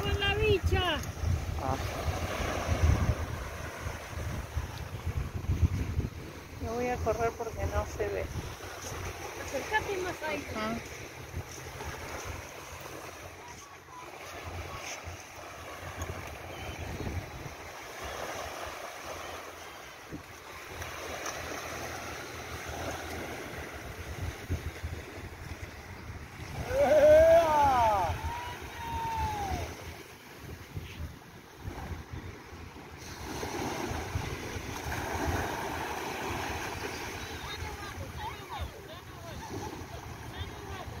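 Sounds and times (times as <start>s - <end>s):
wind on microphone: 0.0s - 18.8s, 22.7s - 41.0s
surf washing on beach: 0.0s - 41.0s.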